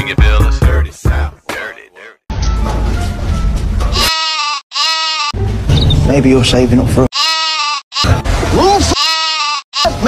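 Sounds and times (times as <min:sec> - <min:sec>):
short bleats: 0:04.0 - 0:05.4, 0:07.1 - 0:08.2, 0:08.9 - 0:10.0.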